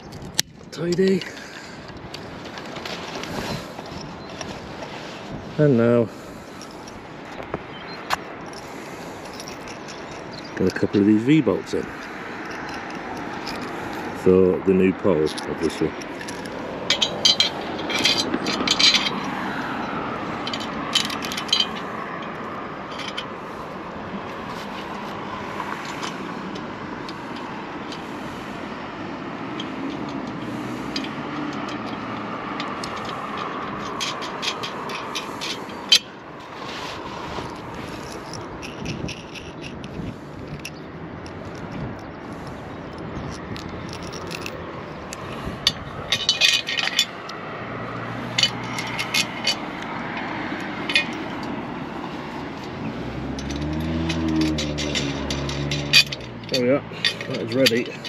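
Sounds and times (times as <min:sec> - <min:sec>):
metal clinks and scrapes: 0:00.0 - 0:58.0
outdoor drone: 0:01.4 - 0:58.0.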